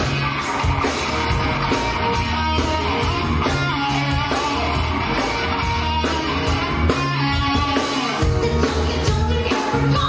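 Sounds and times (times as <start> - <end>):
electric guitar: 0.0 - 10.0
live band playing pop music: 0.0 - 10.0.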